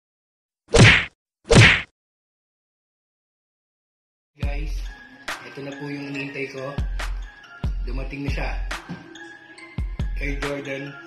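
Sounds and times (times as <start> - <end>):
whack sound effects: 0.7 - 1.9.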